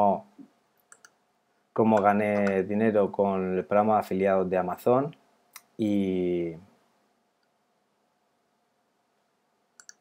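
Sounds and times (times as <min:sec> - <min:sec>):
faint short clicks: 0:09.8 - 0:10.0.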